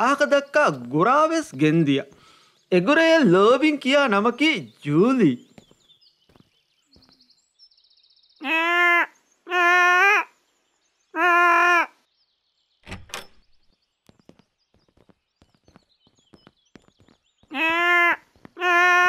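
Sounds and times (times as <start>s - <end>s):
faint bird chirps: 0.0s - 19.0s
door thunking open: 12.8s - 13.7s.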